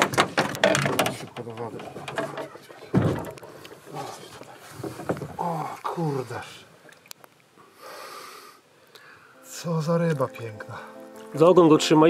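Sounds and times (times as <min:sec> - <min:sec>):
sudden thump: 0:02.9 - 0:03.3
man's voice indistinct: 0:09.4 - 0:12.0.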